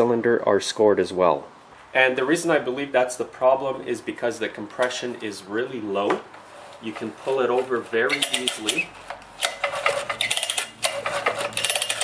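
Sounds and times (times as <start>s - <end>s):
recoil starter pull: 8.1s - 12.0s.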